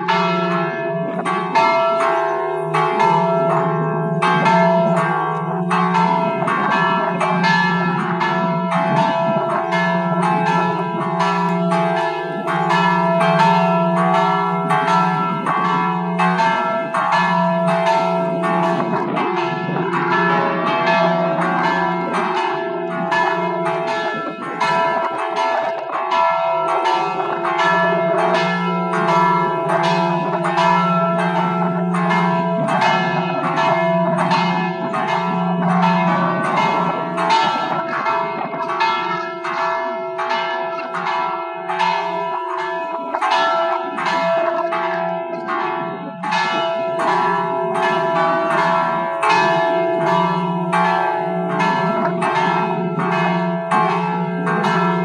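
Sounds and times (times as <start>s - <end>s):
church bells pealing: 0.0s - 55.0s.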